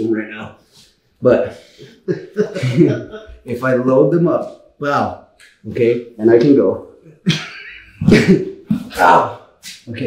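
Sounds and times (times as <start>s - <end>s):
laughter: 2.0s - 3.5s, 7.0s - 8.8s.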